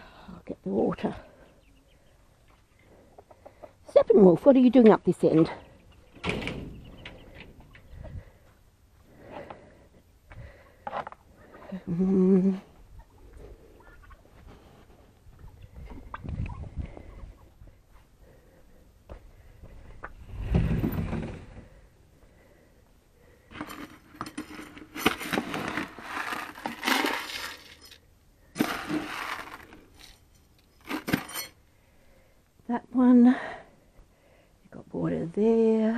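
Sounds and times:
dry seed rattling in plastic tub: 0:23.5 - 0:28.0, 0:28.6 - 0:31.3.

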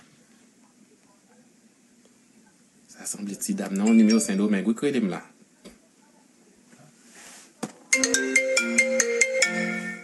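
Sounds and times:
marimba-like phone ringtone: 0:07.9 - 0:10.0.

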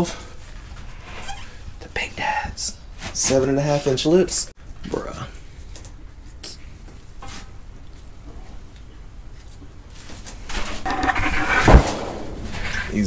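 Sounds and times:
sharp loud knock: 0:10.9 - 0:12.8.

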